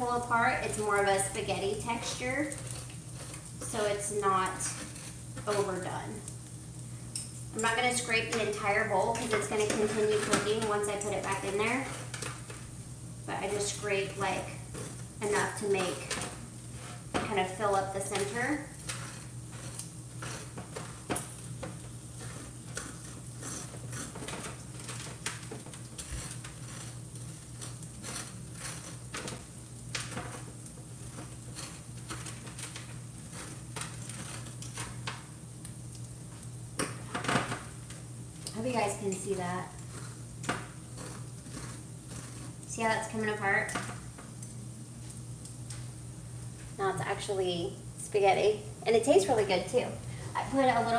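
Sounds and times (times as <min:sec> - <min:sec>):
sausage sizzling in a skillet: 0:00.0 - 0:50.9
steady low hum: 0:00.0 - 0:50.9
fork scraping squash: 0:01.8 - 0:05.8, 0:08.3 - 0:12.7, 0:13.5 - 0:17.2, 0:18.0 - 0:21.2, 0:22.1 - 0:25.2, 0:25.9 - 0:29.4, 0:39.9 - 0:40.2, 0:40.8 - 0:43.5.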